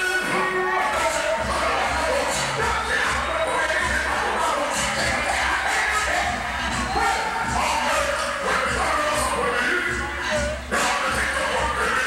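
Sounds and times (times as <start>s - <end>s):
dancehall music through sound system: 0.0s - 12.0s.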